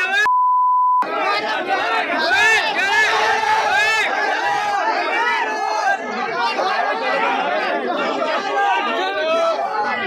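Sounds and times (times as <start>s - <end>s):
crowd shouting: 0.0s - 0.3s, 1.0s - 10.0s
high censor bleep: 0.3s - 1.0s.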